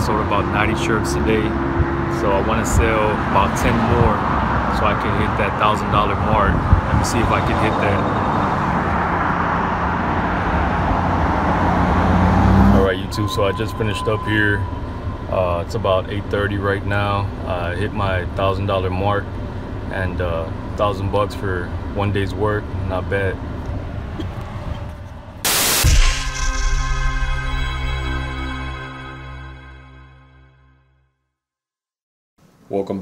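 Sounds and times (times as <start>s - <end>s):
motor vehicle hum: 0.0s - 26.0s
rushing noise: 4.8s - 16.3s, 25.4s - 30.6s
static hiss: 25.5s - 26.0s
deep bass hit: 25.5s - 30.7s
sustained synthesizer chord: 25.5s - 31.0s.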